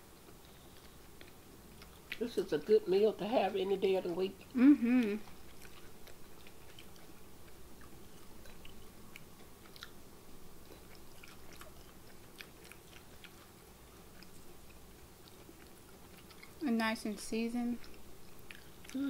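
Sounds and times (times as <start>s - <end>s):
chewing crunchy food: 0.0s - 17.0s, 17.7s - 19.0s.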